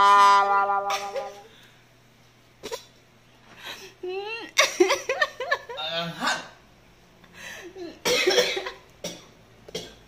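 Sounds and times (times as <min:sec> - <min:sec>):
man coughing: 0:07.9 - 0:10.0.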